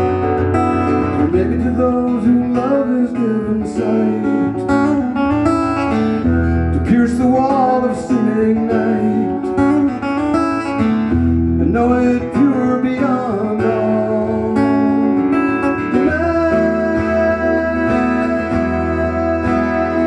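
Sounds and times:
acoustic guitar picking: 0:00.0 - 0:20.0
man singing: 0:01.0 - 0:05.2, 0:06.7 - 0:09.9, 0:11.6 - 0:20.0.

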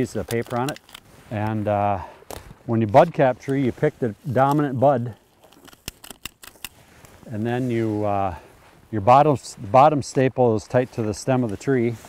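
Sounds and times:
hand stapler clicking: 0:05.6 - 0:06.7.

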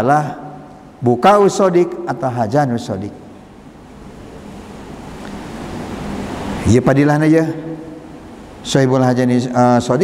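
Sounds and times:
steady rushing hiss: 0:00.0 - 0:10.0.

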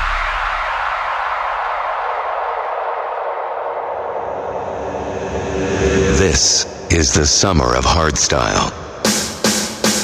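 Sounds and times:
hardstyle kick and bass: 0:00.0 - 0:02.2.

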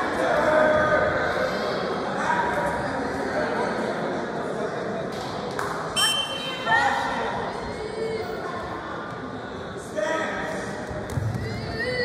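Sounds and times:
shrill referee's whistle: 0:06.0 - 0:06.7.

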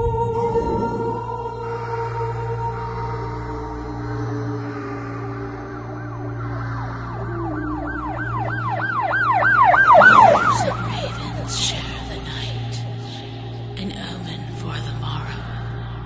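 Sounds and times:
low steady drone: 0:00.0 - 0:16.0
rapid warbling wail: 0:03.5 - 0:13.0.

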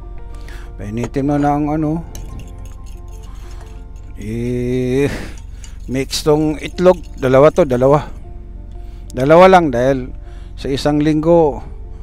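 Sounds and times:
steady low hum: 0:00.0 - 0:09.2
background music: 0:00.0 - 0:12.0
fork clinking against glass bowl: 0:02.2 - 0:08.0.

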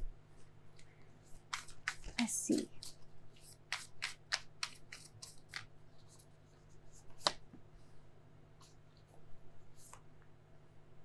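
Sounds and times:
cards snapping and rustling: 0:01.4 - 0:05.7.

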